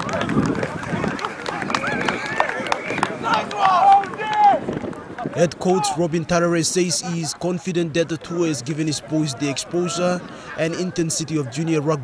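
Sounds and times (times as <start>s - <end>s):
people shouting: 1.5s - 4.7s.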